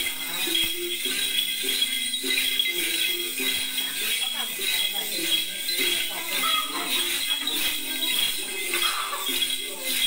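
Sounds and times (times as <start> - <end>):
chanted melody: 0.0 - 10.0
small bells jingling: 0.0 - 10.0.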